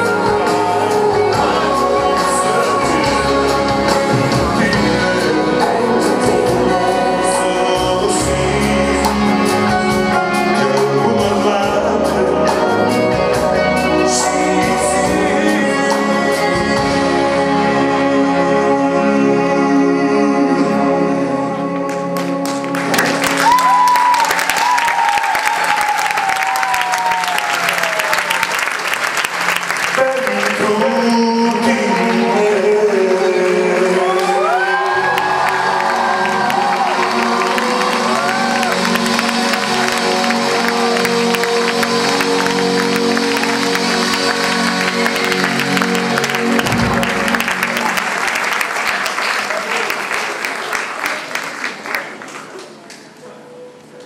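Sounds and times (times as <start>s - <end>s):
person singing: 0.0s - 24.0s, 29.9s - 48.6s
live band sustained chords: 0.0s - 24.2s, 29.0s - 49.7s
audience applauding: 21.9s - 53.3s.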